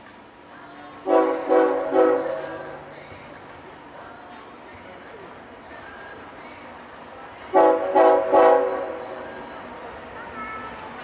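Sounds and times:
locomotive air horn blasts: 1.0 - 2.8, 7.5 - 9.1.

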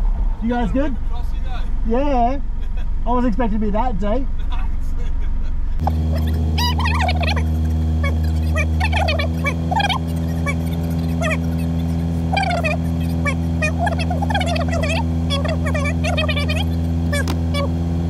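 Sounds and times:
car engine idling: 0.0 - 18.0
birds calling and warbling: 5.9 - 17.7.

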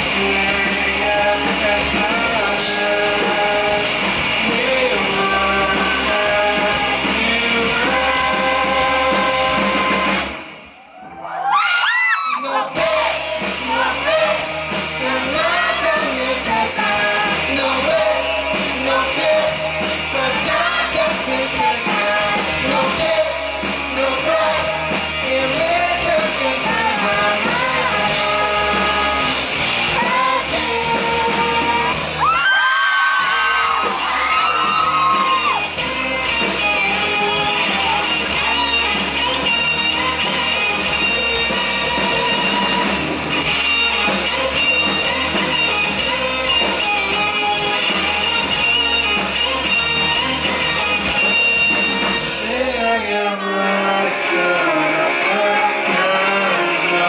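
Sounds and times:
live rock band playing: 0.0 - 10.8, 12.6 - 57.0
audience whooping and shouting: 8.8 - 16.1, 26.7 - 53.9.

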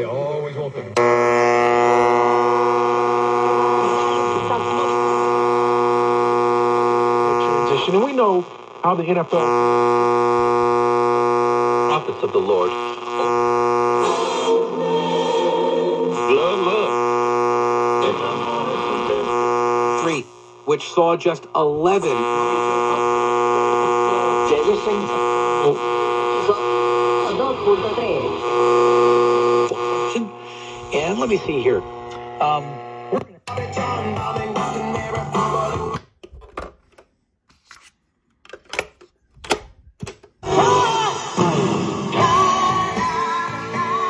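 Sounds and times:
distorted electric guitar chord: 1.0 - 7.8, 8.4 - 15.2, 16.0 - 20.7, 21.9 - 35.9
song playing from speakers: 13.9 - 17.0, 30.8 - 36.0, 40.4 - 44.0.

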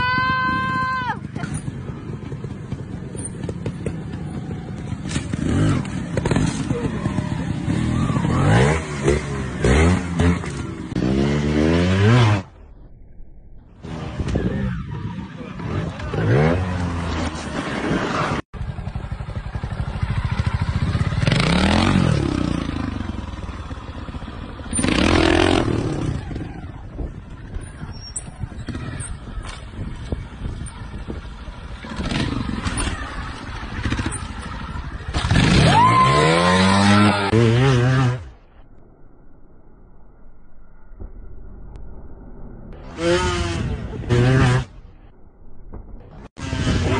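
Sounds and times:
motorcycle engines revving: 0.0 - 12.6, 13.8 - 38.6, 42.8 - 44.9, 46.0 - 46.9.

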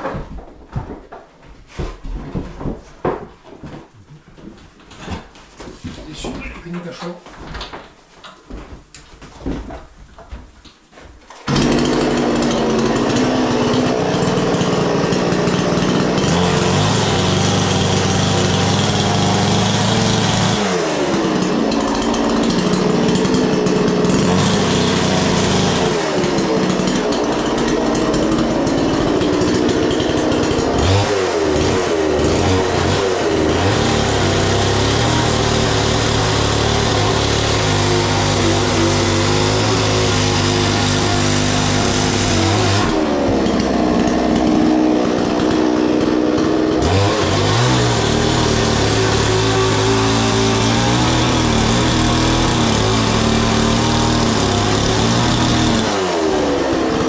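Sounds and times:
chainsaw running at high revs: 11.4 - 57.0
gritty brick cutting hiss: 16.3 - 56.4.

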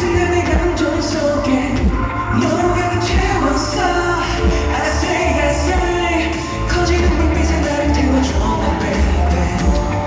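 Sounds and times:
live pop band with bass: 0.0 - 10.0
man singing into a microphone: 0.0 - 10.0.

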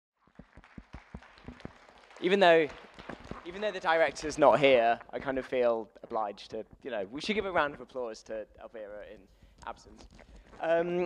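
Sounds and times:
scattered hand claps: 0.4 - 4.4.

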